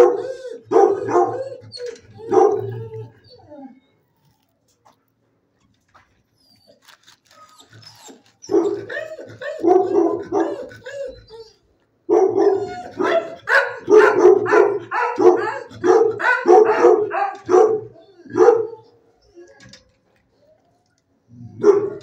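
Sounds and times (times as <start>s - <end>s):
dog barking: 0.0s - 1.6s, 2.2s - 2.8s, 8.5s - 10.7s, 12.1s - 18.8s, 21.6s - 22.0s.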